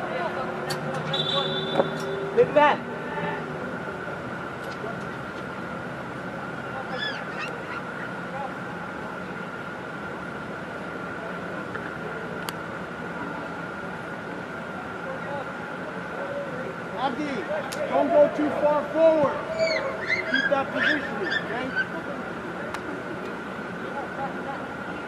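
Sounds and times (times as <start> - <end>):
distant players shouting: 0.0 - 3.9, 6.6 - 8.9, 16.1 - 22.4
steady indoor hum: 0.0 - 25.0.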